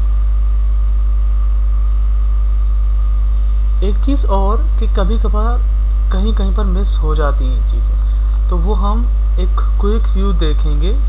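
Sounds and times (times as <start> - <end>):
high steady whine: 0.0 - 11.0
low electrical mains hum: 0.0 - 11.0.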